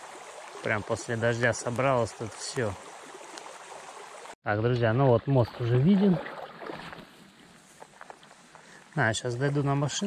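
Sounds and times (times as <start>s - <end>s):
small river flowing: 0.0s - 4.4s, 5.5s - 10.0s.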